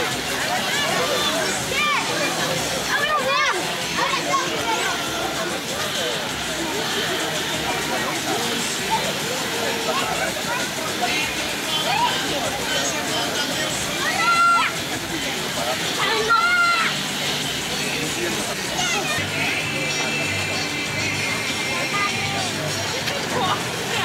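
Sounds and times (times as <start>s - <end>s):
background music: 0.0s - 24.0s
children's voices: 0.0s - 24.0s
crowd chatter: 0.0s - 24.0s
loud high-pitched shouts: 14.0s - 14.8s.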